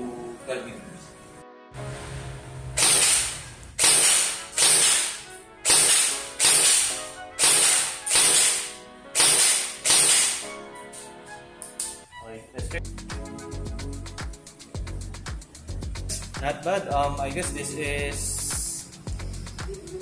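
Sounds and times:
airsoft gun shots: 2.8 - 10.4.

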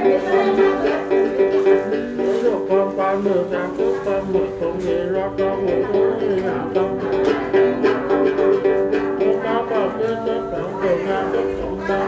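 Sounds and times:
lute plucked notes: 0.0 - 12.0.

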